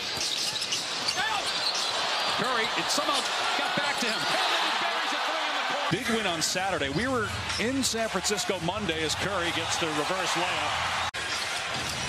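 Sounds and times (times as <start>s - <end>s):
sneaker squeaks: 0.0s - 2.4s
arena crowd noise: 0.0s - 12.0s.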